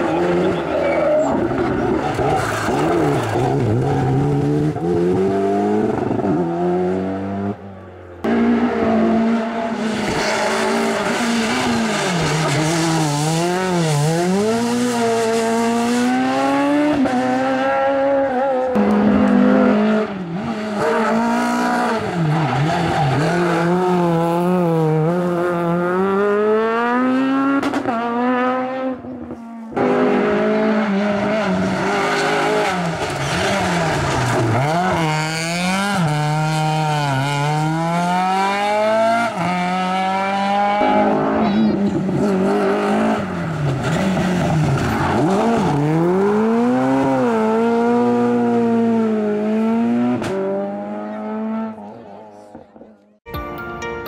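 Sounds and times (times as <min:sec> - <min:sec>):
rally car engines revving: 0:00.0 - 0:53.0.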